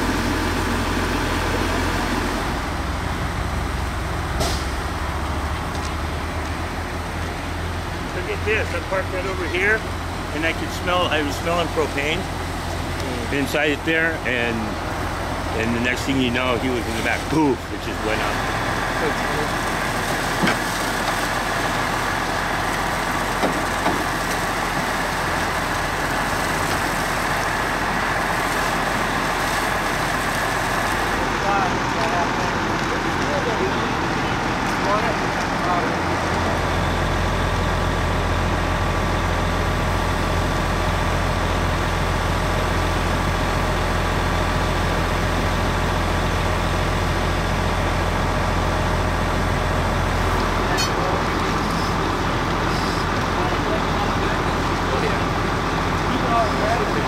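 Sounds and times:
deep low engine drone: 0.0s - 57.0s
fire hose spraying water: 0.0s - 57.0s
vehicle engine running: 0.0s - 57.0s.

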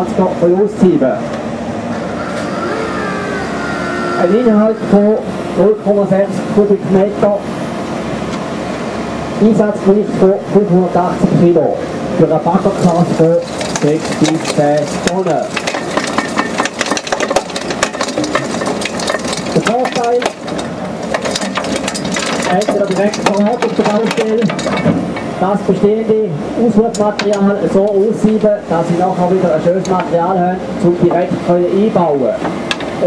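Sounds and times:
excavator engine and hydraulics: 0.0s - 33.0s
screening bucket clattering: 12.8s - 25.4s.

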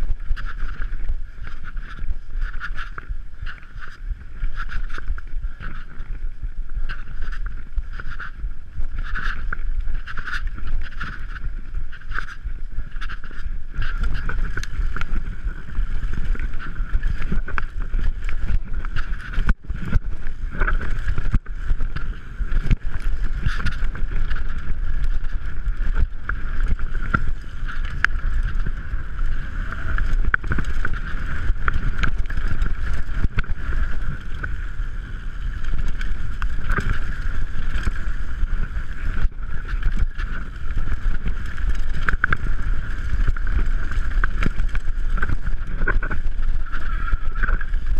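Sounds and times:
bike tyres rumbling on dirt: 0.0s - 47.9s
wind on microphone: 0.0s - 47.9s
bike knocks and rattles: 6.8s - 34.6s, 35.5s - 47.9s.

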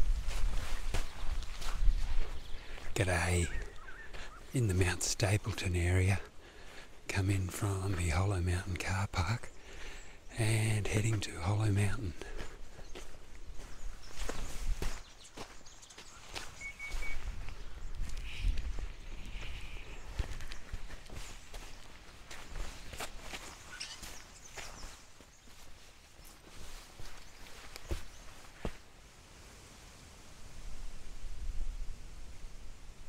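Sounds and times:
footsteps on sandy gritty track: 0.0s - 28.9s.

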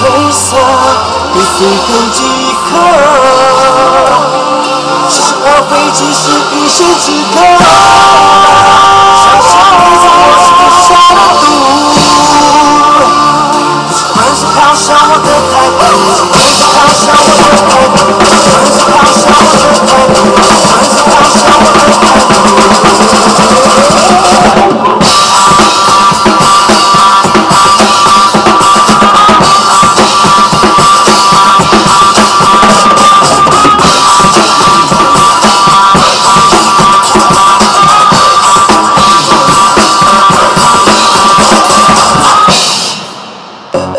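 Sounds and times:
rock backing track with guitar: 0.0s - 43.7s
drum kit playing: 0.0s - 43.9s.

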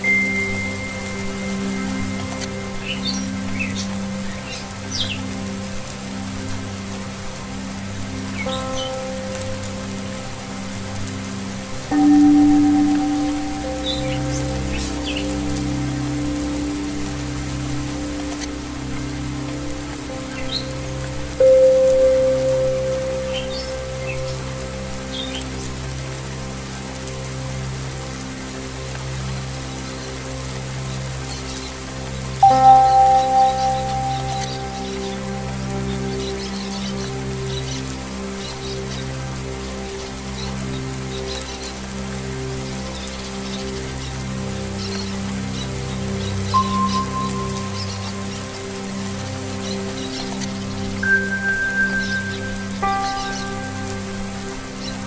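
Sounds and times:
singing-bowl music: 0.0s - 55.0s
steady rain: 0.0s - 55.0s
loud ringing bowl note: 11.9s - 15.5s
small birds chirping: 11.9s - 25.6s, 32.4s - 39.1s, 42.9s - 55.0s.

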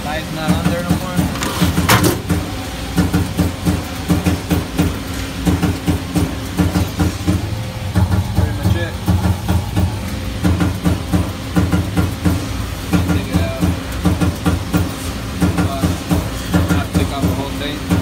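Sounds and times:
machinery rhythmic low throb: 0.0s - 18.0s.

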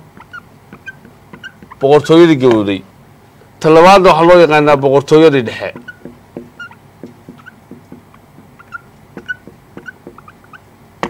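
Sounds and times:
marker squeaking on whiteboard: 0.0s - 2.7s, 5.6s - 10.7s.

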